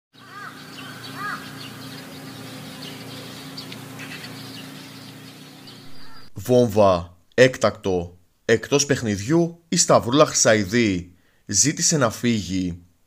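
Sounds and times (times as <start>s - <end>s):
birds calling: 0.1s - 6.5s
high bird chirps: 0.2s - 6.4s
steady low hum: 0.6s - 9.3s.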